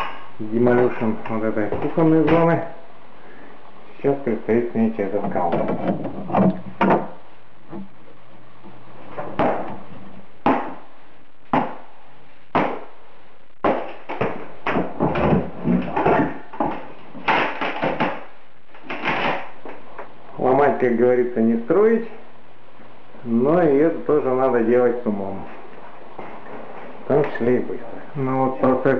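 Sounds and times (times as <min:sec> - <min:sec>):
wood breaking: 0:13.6 - 0:19.6.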